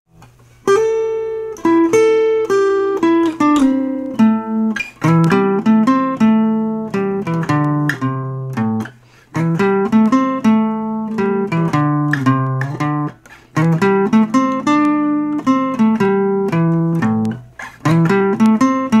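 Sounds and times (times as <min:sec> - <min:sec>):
acoustic guitar blues riff: 0:00.6 - 0:19.0.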